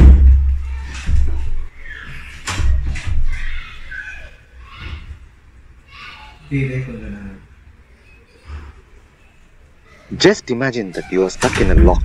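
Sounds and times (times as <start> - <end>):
door thudding against frame: 0.0 - 1.6, 11.4 - 12.0.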